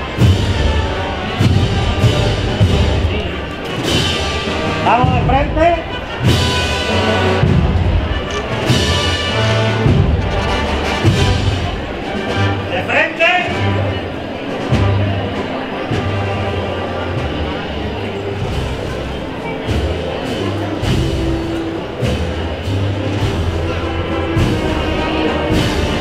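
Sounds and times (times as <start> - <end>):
drum strokes: 0.0 - 12.7
wind band playing a march: 0.0 - 26.0.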